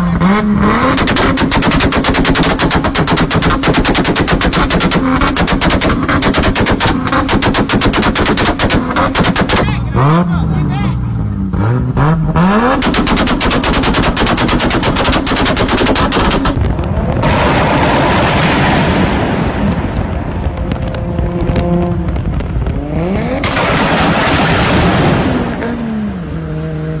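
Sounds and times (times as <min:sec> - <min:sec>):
loud exhaust roar: 0:00.0 - 0:27.0
engine backfiring bangs: 0:00.2 - 0:10.4, 0:11.5 - 0:26.3.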